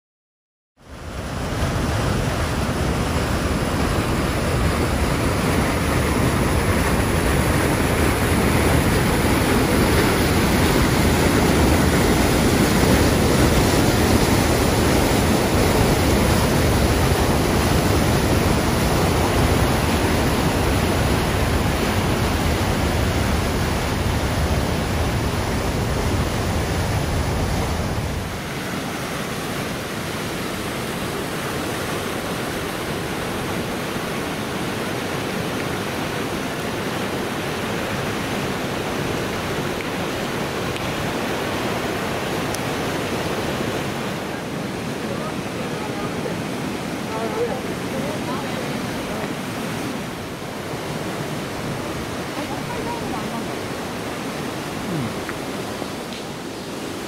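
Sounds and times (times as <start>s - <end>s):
river water over rapids: 0.8s - 57.0s
waterfall rushing into pool: 0.8s - 57.0s.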